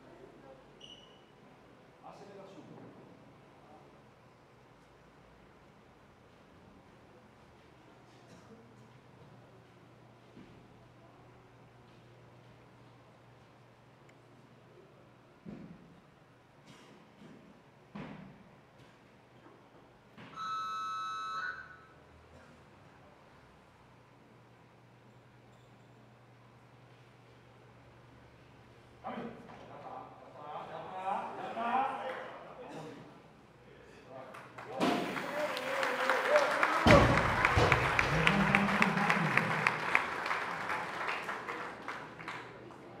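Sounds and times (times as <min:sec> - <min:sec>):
electronic timer buzzer beep: 0:20.3 - 0:22.0
people clapping: 0:32.0 - 0:32.4, 0:34.2 - 0:43.0.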